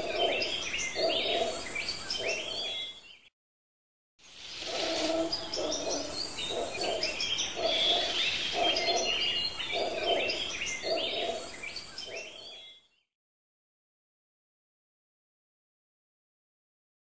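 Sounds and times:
small birds chirping: 0:00.0 - 0:03.3, 0:04.2 - 0:13.1.

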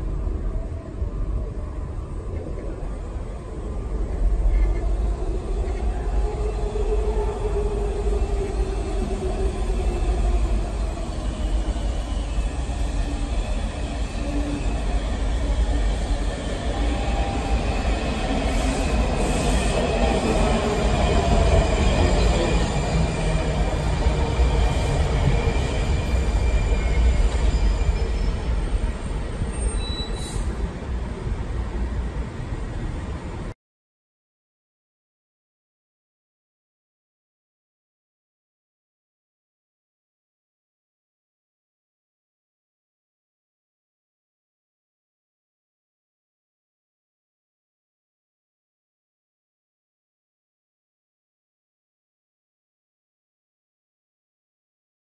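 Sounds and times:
train braking to a stop: 0:02.0 - 0:32.2.

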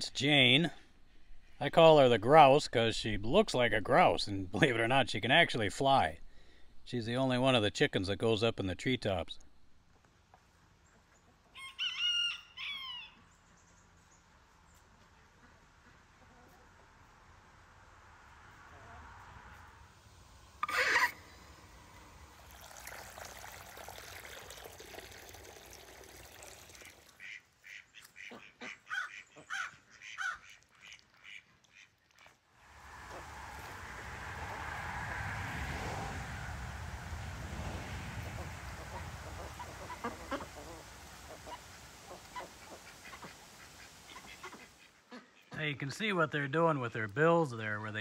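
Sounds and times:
ducks quacking: 0:20.6 - 0:21.6, 0:27.1 - 0:32.4, 0:38.1 - 0:45.8
bills dabbling in water: 0:20.6 - 0:28.3, 0:37.1 - 0:44.8.

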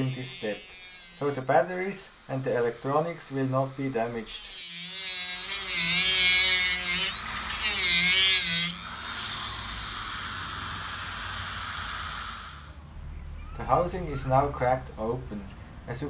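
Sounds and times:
rotary tool cutting plastic: 0:00.0 - 0:12.8.

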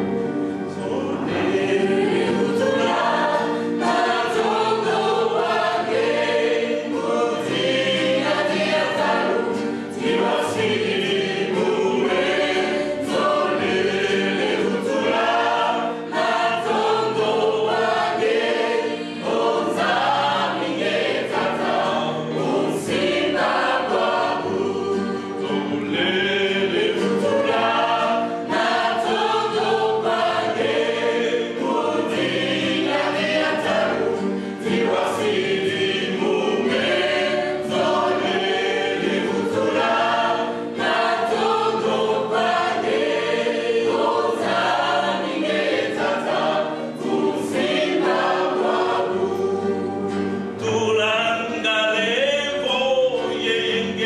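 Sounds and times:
choir singing gospel: 0:00.0 - 0:54.0.

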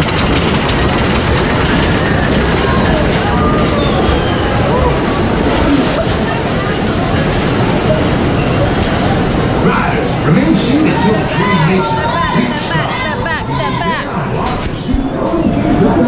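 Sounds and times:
roller coaster train rumbling: 0:00.0 - 0:16.0
people chattering: 0:00.8 - 0:16.0.

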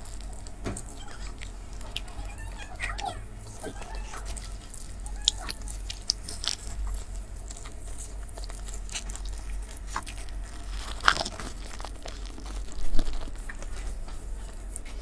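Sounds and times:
chewing bread: 0:00.0 - 0:15.0
steady low hum: 0:00.0 - 0:15.0.

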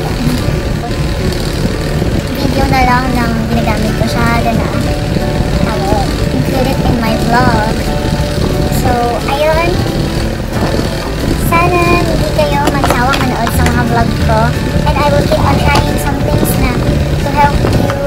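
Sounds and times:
low background rumble: 0:00.0 - 0:18.0
woman talking: 0:02.3 - 0:05.0, 0:05.6 - 0:07.8, 0:11.4 - 0:18.0.

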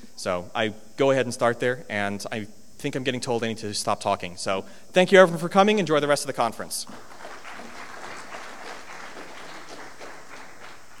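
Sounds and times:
audience applauding: 0:06.9 - 0:11.0.

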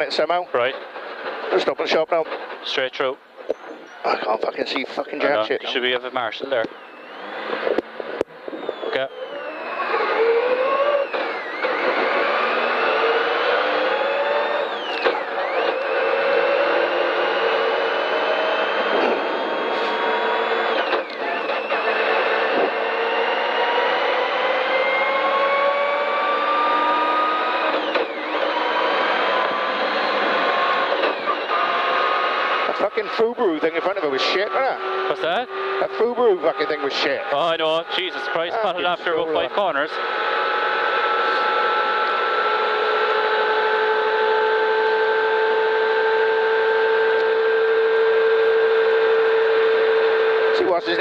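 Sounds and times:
car engine accelerating hard: 0:00.0 - 0:51.0.

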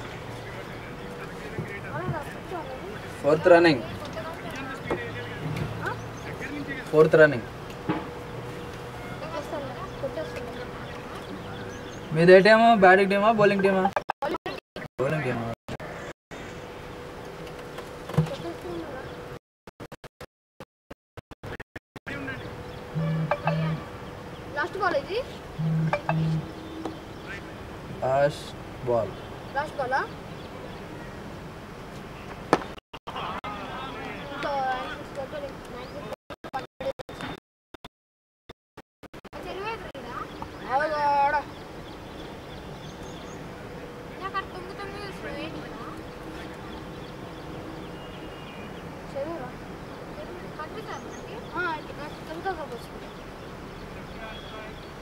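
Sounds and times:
sharp thump: 0:07.9 - 0:08.1.

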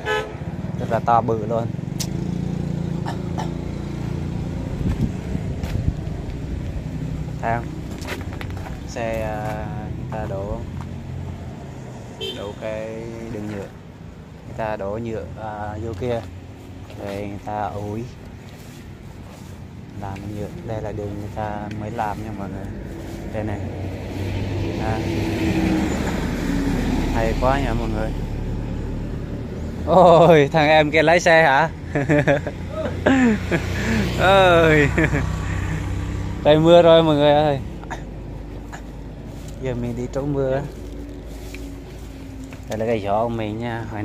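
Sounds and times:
paving machine engine droning: 0:31.9 - 0:43.4.

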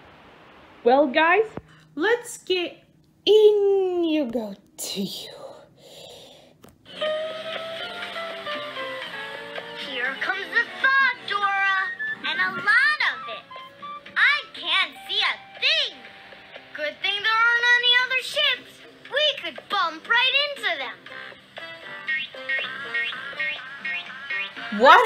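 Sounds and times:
cartoon music with held notes: 0:06.9 - 0:18.1, 0:18.7 - 0:25.0.

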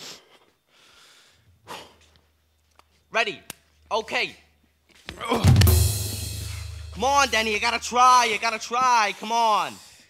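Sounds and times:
sharp breathy exhalations: 0:00.0 - 0:02.0, 0:06.3 - 0:06.9
faint breathing: 0:00.0 - 0:02.2, 0:09.6 - 0:10.0.

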